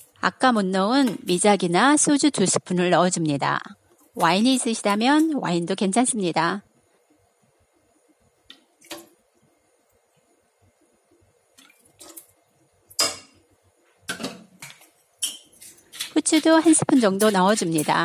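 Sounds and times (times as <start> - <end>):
spoon clinking against metal pot: 13.0 - 13.4, 15.2 - 18.0.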